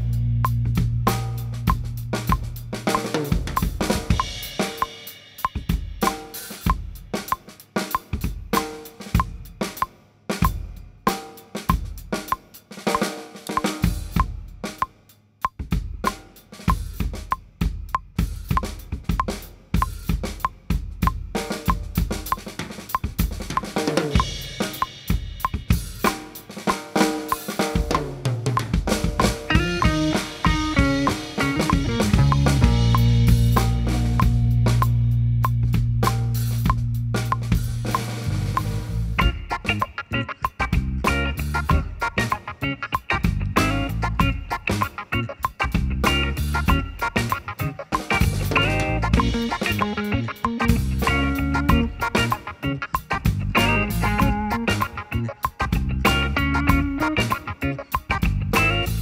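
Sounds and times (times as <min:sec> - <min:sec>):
backing track: 0:00.0 - 0:59.0
drum kit played with sticks: 0:00.0 - 0:59.0.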